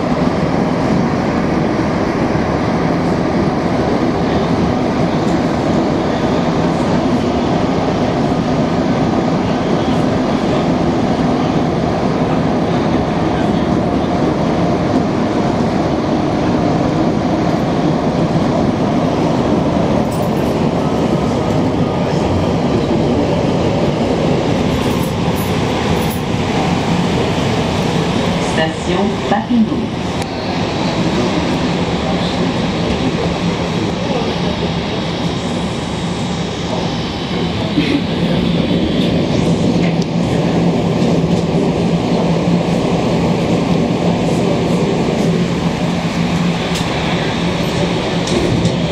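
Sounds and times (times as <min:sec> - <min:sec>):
subway train running in tunnel: 0:00.0 - 0:48.9.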